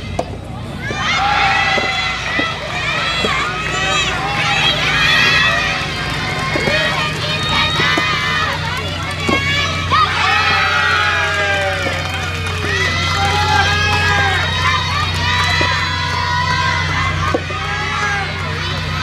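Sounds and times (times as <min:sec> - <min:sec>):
rackets striking ball: 0:00.0 - 0:17.7
girls shouting and calling: 0:00.0 - 0:19.0
low hum: 0:00.0 - 0:19.0.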